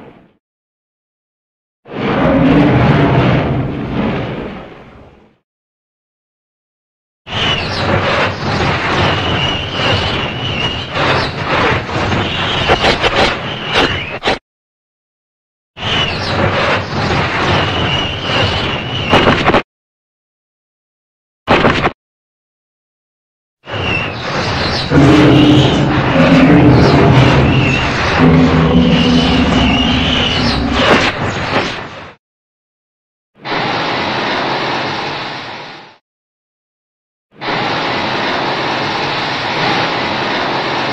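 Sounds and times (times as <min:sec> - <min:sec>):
monster roar with high screech: 0:02.0 - 0:03.2, 0:24.8 - 0:31.4.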